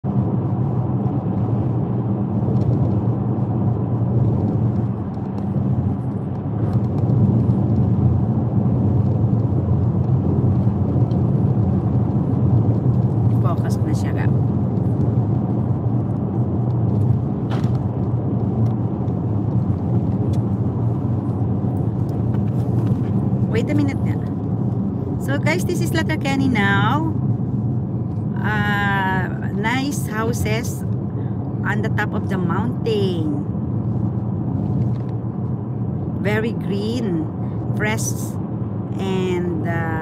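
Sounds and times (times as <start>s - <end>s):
car engine and tyre rumble: 0.0s - 40.0s.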